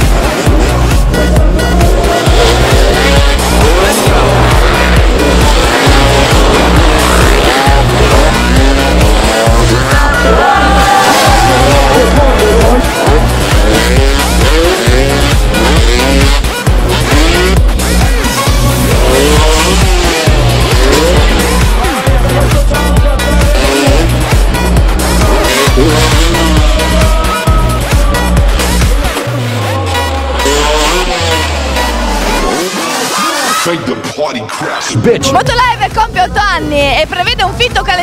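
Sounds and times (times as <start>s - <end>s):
motorcycle engines revving: 0.0s - 33.7s
electronic dance music: 0.0s - 38.0s.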